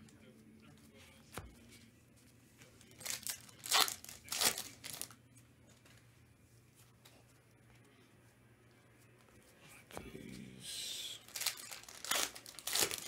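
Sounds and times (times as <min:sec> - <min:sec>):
card pack wrapper tearing: 0:03.0 - 0:05.1, 0:11.2 - 0:13.0.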